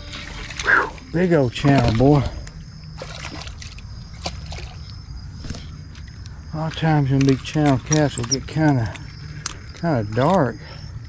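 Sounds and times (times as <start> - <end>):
fish splashing at water surface: 2.9 - 5.6.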